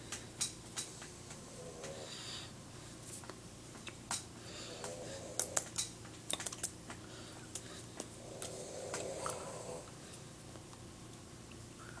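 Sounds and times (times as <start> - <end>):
hands clicking and slapping: 3.2 - 9.1.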